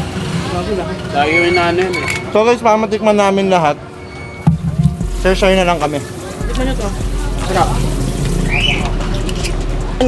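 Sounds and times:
man talking: 0:05.0 - 0:07.9.

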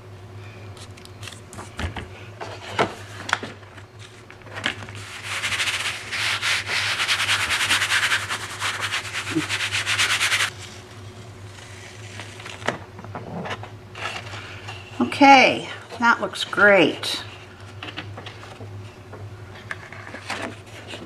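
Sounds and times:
hand rubbing on paper: 0:05.0 - 0:10.5.

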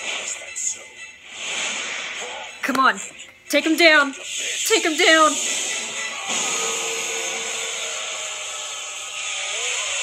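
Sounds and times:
battle soundtrack music: 0:01.2 - 0:08.6
hiss of sound effects: 0:01.3 - 0:02.4, 0:04.2 - 0:10.0.

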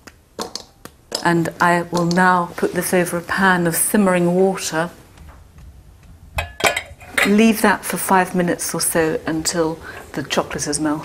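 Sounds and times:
ceramic bowl clinking on metal pan: 0:06.4 - 0:07.5.

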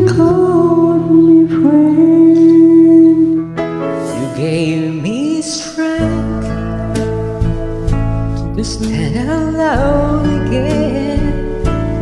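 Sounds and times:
soft ballad backing track: 0:00.0 - 0:12.0.

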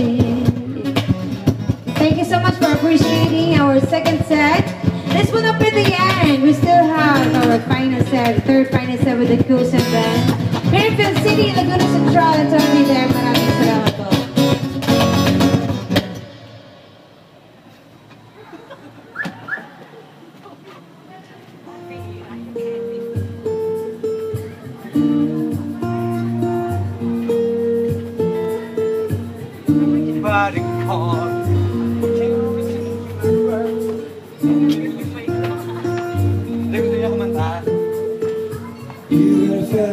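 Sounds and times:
acoustic guitar picking: 0:00.0 - 0:18.4, 0:21.6 - 0:39.9
scattered voices: 0:19.2 - 0:39.9
loud music and voices: 0:21.8 - 0:39.9.

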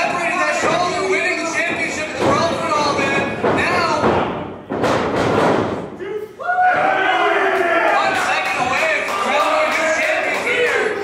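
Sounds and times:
people shouting: 0:06.0 - 0:11.0.

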